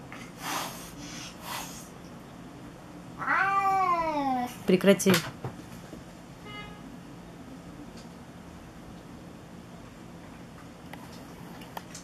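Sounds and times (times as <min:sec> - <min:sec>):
cat hissing: 0:00.3 - 0:01.9
cat yowling: 0:03.2 - 0:04.4.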